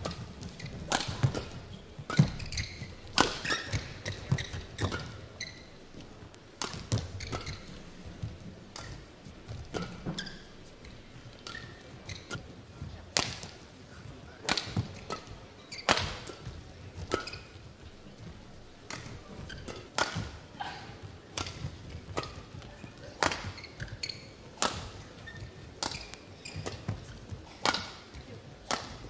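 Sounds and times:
rackets hitting shuttlecock: 0:00.0 - 0:05.7, 0:06.6 - 0:07.9, 0:08.7 - 0:10.6, 0:13.1 - 0:13.6, 0:14.4 - 0:17.6, 0:18.9 - 0:29.0
shoes squeaking on court: 0:00.0 - 0:13.6, 0:14.5 - 0:29.0.

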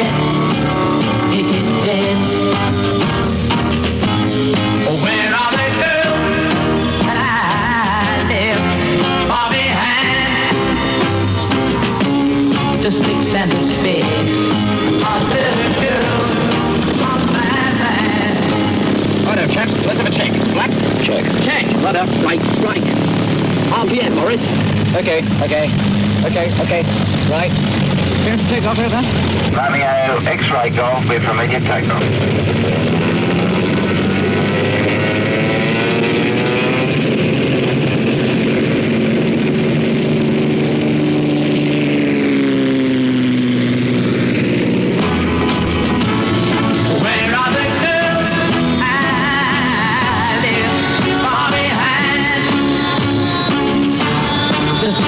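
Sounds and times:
voices calling out: 0:00.0 - 0:32.2, 0:44.5 - 0:55.0
light aircraft piston engine droning: 0:00.0 - 0:55.0.

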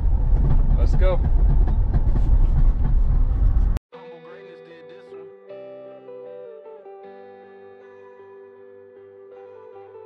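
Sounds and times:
road and wind noise in vehicle: 0:00.0 - 0:03.8.

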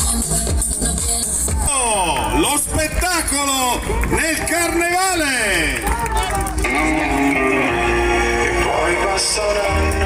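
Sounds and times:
loud music with voice: 0:00.0 - 0:10.0.

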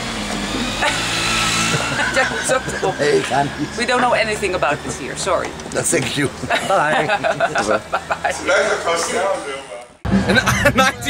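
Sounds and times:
vehicle engine passing by: 0:00.0 - 0:10.4.

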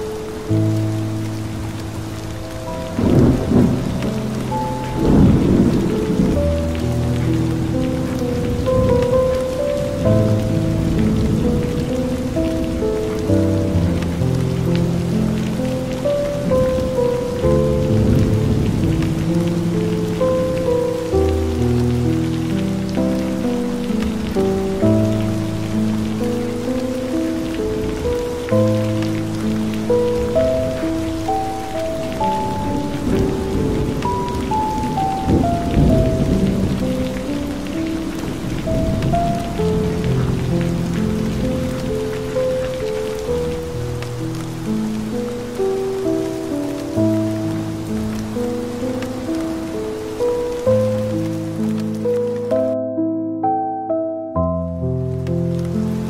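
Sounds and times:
slow instrumental music: 0:00.0 - 0:56.0
steady rain: 0:00.0 - 0:56.0
thunder rolling: 0:01.5 - 0:14.2, 0:16.2 - 0:22.3, 0:22.9 - 0:43.9.

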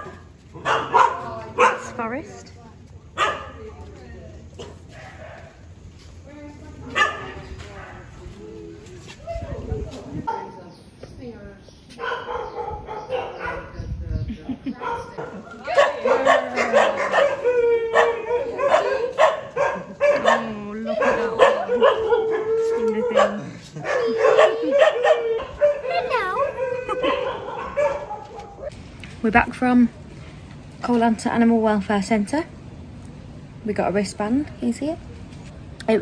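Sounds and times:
dogs barking: 0:00.0 - 0:02.2, 0:03.1 - 0:03.7, 0:04.6 - 0:05.7, 0:06.8 - 0:08.1, 0:10.2 - 0:10.7, 0:12.0 - 0:13.9, 0:14.7 - 0:28.7.

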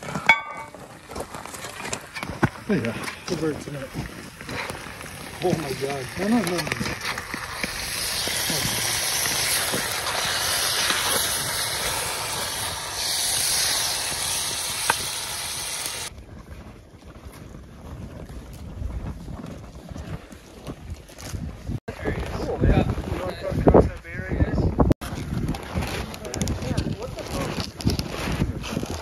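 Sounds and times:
food sizzling in a pot: 0:03.4 - 0:16.1.

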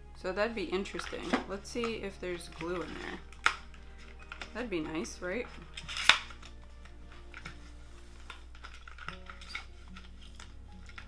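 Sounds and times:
plastic packaging clicks and crinkles: 0:01.0 - 0:04.6, 0:05.4 - 0:11.0
plastic packaging snap: 0:02.6 - 0:04.6, 0:05.5 - 0:07.6, 0:08.2 - 0:11.0.

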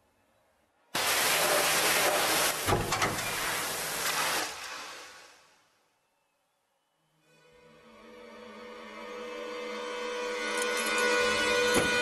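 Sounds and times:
hiss: 0:01.0 - 0:05.6
sustained orchestral chord: 0:07.3 - 0:12.0.

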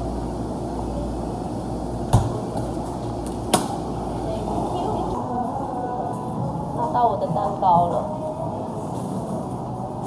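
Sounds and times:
shop noise: 0:00.0 - 0:10.0.

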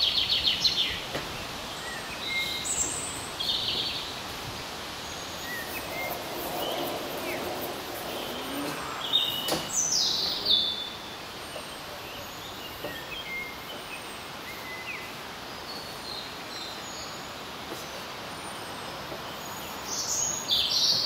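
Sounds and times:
birds chirping: 0:00.0 - 0:21.0
outdoor background noise: 0:00.0 - 0:21.0.

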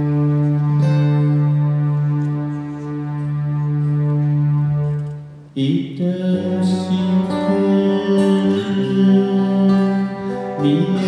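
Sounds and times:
acoustic band music: 0:00.0 - 0:11.0.

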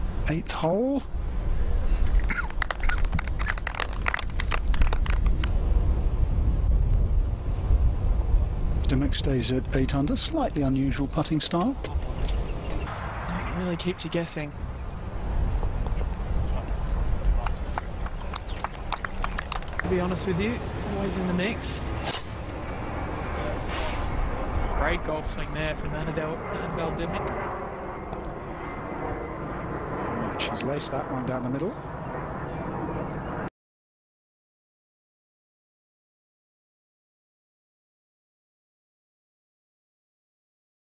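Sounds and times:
low outdoor rumble: 0:00.0 - 0:33.5
birds chirping and calling: 0:11.7 - 0:12.9, 0:17.5 - 0:19.5
golf club striking ball: 0:22.0 - 0:22.6
brief hiss: 0:23.7 - 0:24.1.

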